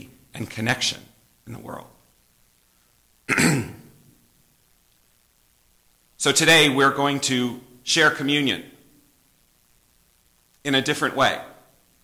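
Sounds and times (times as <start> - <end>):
man clearing his throat: 3.3 - 4.0.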